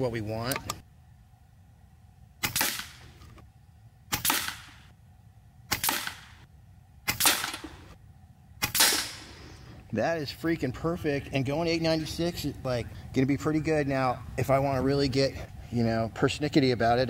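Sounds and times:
air rifle shots: 2.4s - 3.2s, 4.1s - 4.9s, 5.7s - 8.0s, 8.6s - 9.6s.

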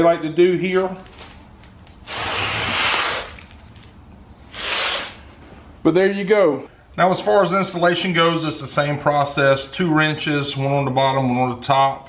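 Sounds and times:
cardboard scraping on concrete: 2.1s - 3.4s, 4.5s - 5.2s.

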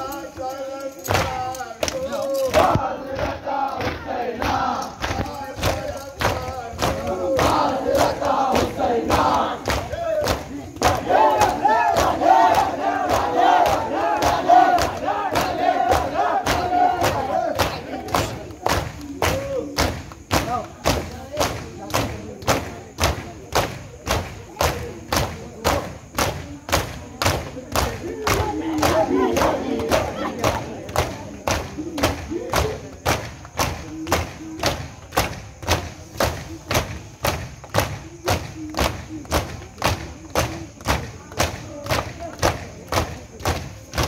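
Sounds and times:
crowd shouting: 0.0s - 21.2s, 24.2s - 33.3s
hands slapping chests in unison: 0.0s - 44.0s.

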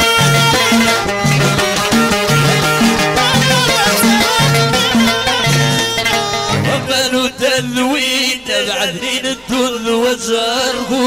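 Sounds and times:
instrumental accompaniment: 0.0s - 7.8s
chanted folk singing: 0.0s - 11.0s.

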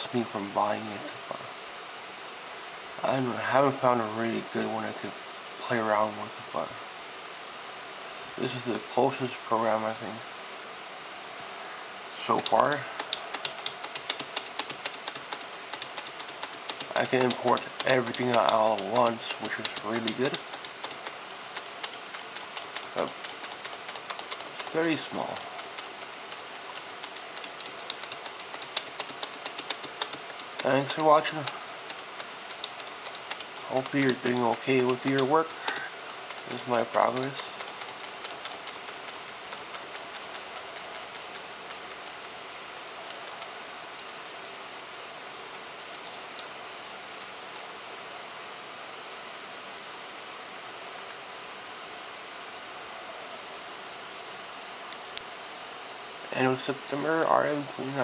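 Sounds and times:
faint room noise hiss: 0.0s - 58.0s
light ticking clicks: 12.4s - 42.4s, 43.0s - 44.6s, 45.5s - 46.6s.

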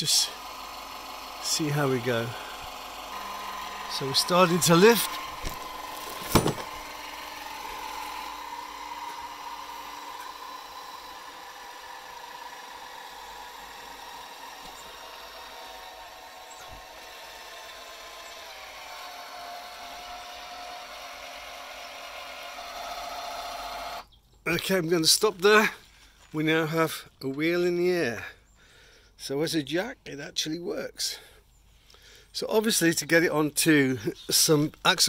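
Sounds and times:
hydraulic jack motor whining: 0.0s - 24.1s.

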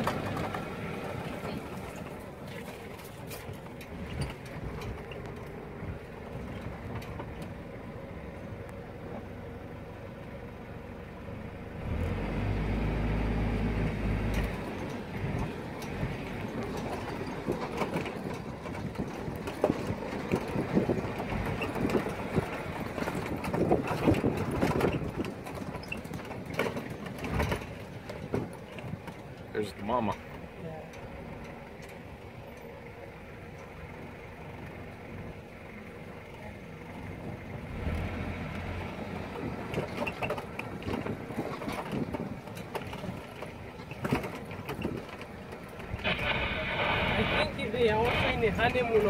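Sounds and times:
vehicle engine running: 0.0s - 49.0s
knocks and rattles: 14.3s - 29.5s.

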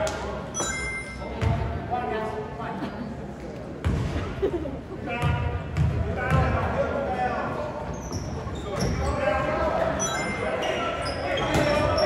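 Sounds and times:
voices in gym: 0.0s - 12.0s
basketball bouncing on gym floor: 5.2s - 6.6s.

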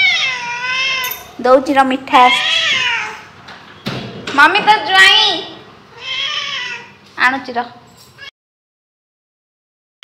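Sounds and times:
cat meowing: 0.0s - 1.1s, 2.3s - 3.2s, 5.9s - 7.0s.

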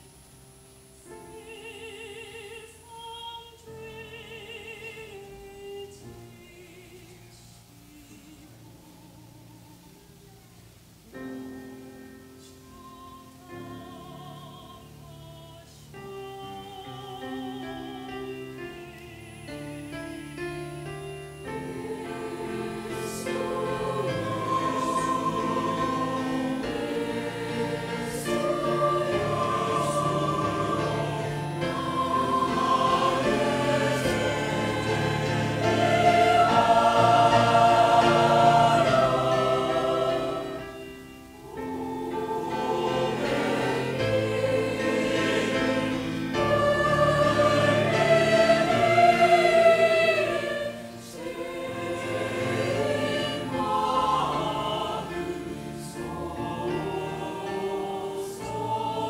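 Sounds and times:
mixed choir singing: 12.2s - 59.0s.

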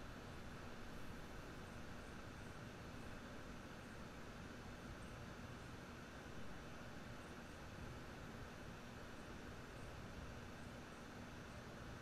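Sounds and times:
room noise hiss: 0.0s - 12.0s.

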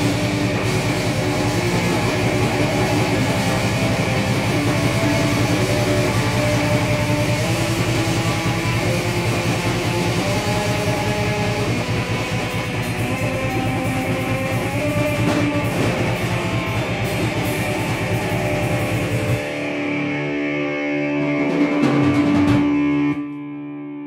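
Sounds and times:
rock band jamming: 0.0s - 23.8s
electric guitar: 0.0s - 24.0s.

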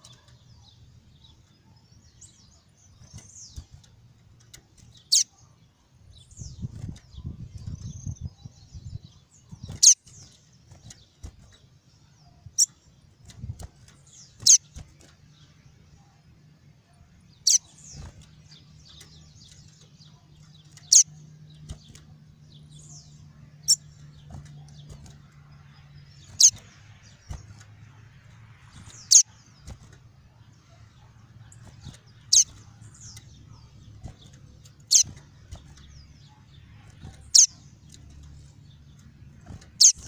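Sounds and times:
faint bird chirps: 0.0s - 40.0s
bird giving sharp high calls: 14.4s - 14.7s, 17.4s - 17.7s, 26.2s - 26.6s, 29.0s - 29.3s, 34.9s - 35.2s, 37.3s - 37.6s.

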